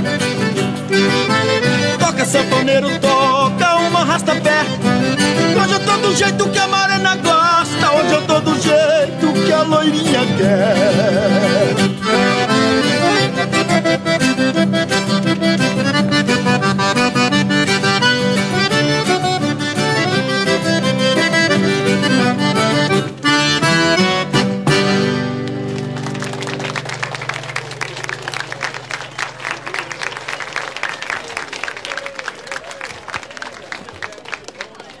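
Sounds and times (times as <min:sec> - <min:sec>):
accordion playing: 0:00.0 - 0:30.8
people clapping: 0:25.3 - 0:35.0.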